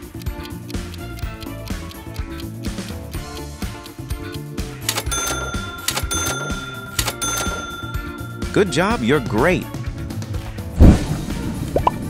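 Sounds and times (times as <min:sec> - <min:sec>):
bell-like ding: 0:04.9 - 0:09.0.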